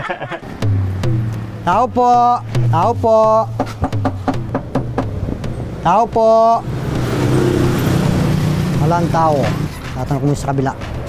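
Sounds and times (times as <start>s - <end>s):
vehicle passing by: 5.0s - 11.0s.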